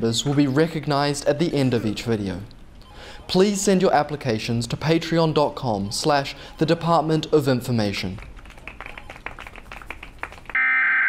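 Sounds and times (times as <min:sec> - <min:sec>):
electronic beep tone: 0:10.6 - 0:11.0.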